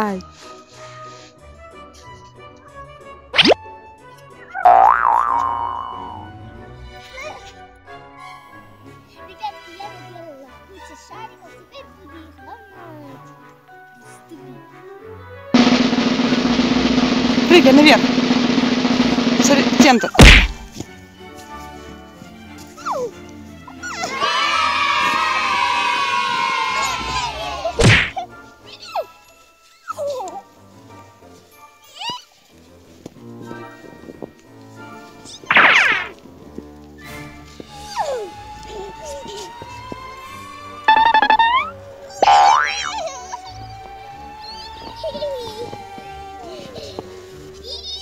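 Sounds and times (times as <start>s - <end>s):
background music: 0.0s - 48.0s
springy cartoon notes: 4.6s - 6.4s, 35.5s - 36.1s, 40.9s - 43.8s
wavering high tone: 4.7s - 6.3s, 40.9s - 44.9s
loud thump: 20.2s - 20.8s
sharp hit: 20.2s - 20.8s
short falling whistle: 40.9s - 41.8s.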